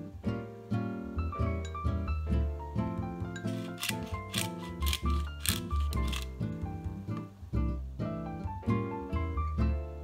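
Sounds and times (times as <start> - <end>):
light plucked music: 0.0 - 10.0
pepper grinder grinding: 3.4 - 6.4.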